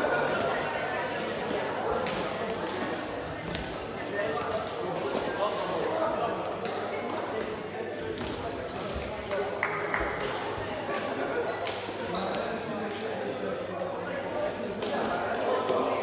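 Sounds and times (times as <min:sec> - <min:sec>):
voices echoing in sports hall: 0:00.0 - 0:16.0
brief high squeaks: 0:14.6 - 0:15.0.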